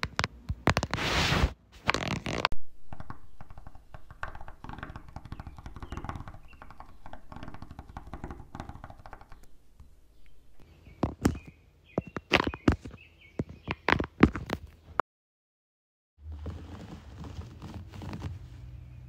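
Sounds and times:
sharp taps: 2.9s - 9.5s.

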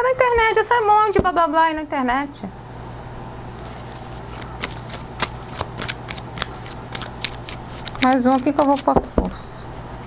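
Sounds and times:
cards shuffling with sharp snaps: 3.6s - 8.9s.

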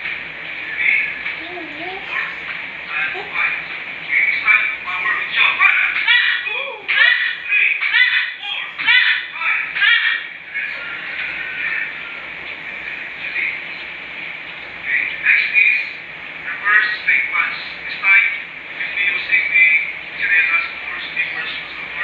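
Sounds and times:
indistinct voices talking: 0.5s - 22.0s.

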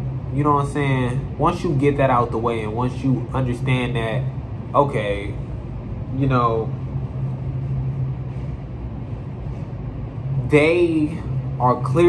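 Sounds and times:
steady low hum with rumble: 0.0s - 12.0s.

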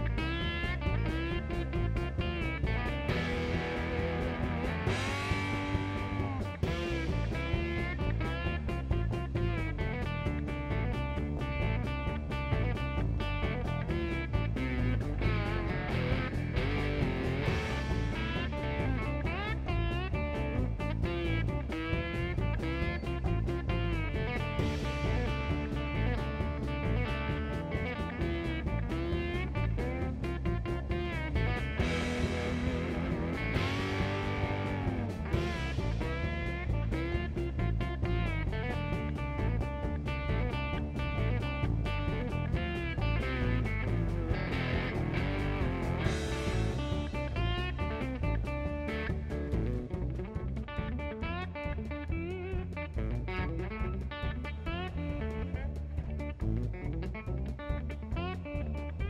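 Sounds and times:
bass guitar: 0.0s - 59.0s
drums steady beat: 0.0s - 59.0s
sliding lap steel guitar: 0.0s - 59.0s.

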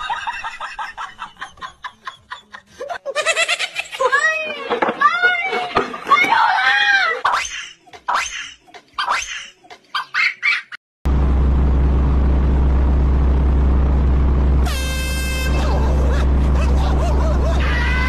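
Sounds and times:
steady low hum: 11.1s - 18.0s
car horn blast: 14.6s - 15.9s
voices shouting and laughing: 15.5s - 18.0s.

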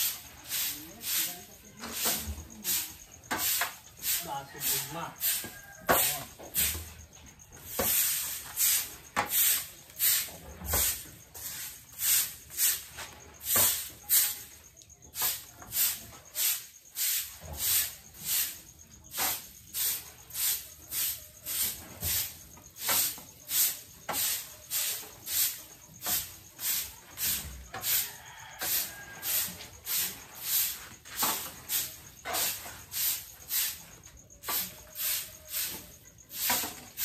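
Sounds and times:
broom sweeping concrete floor: 0.0s - 37.0s.

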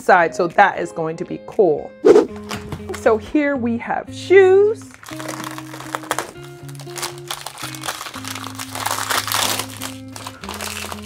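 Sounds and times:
background music with low notes: 0.0s - 11.0s
foil packet crinkling and tearing: 4.9s - 11.0s.

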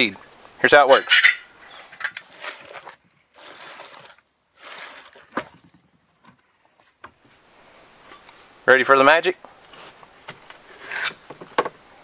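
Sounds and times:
soil blocker squelching in wet soil: 1.8s - 5.8s.

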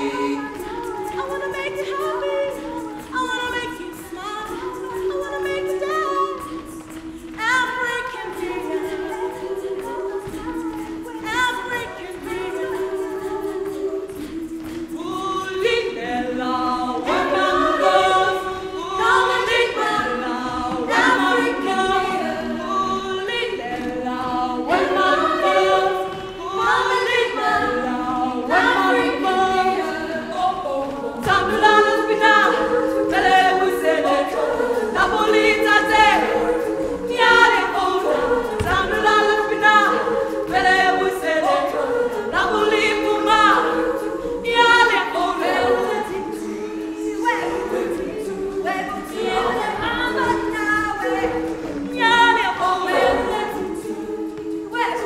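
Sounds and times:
women's choir singing a cappella: 0.0s - 55.0s.

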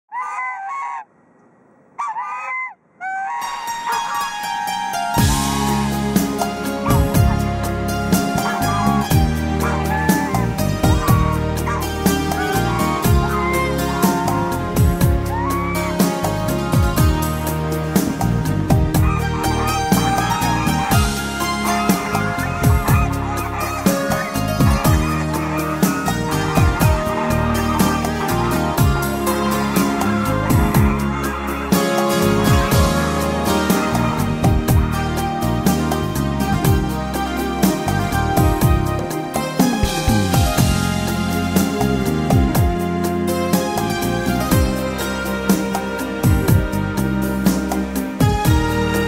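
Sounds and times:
geese honking: 0.1s - 1.1s, 2.0s - 49.0s
music: 3.4s - 49.0s.

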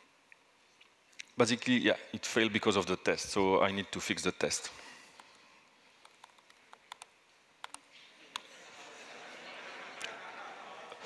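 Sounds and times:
soft laptop keystrokes: 6.0s - 8.5s.

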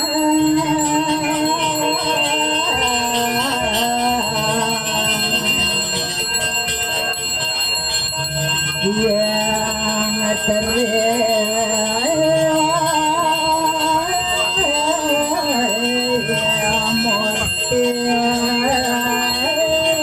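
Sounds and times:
hand bell ringing: 0.0s - 20.0s.

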